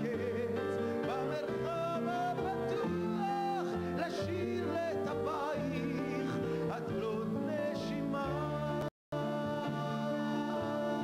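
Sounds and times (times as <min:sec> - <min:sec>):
man singing: 0:00.0 - 0:11.0.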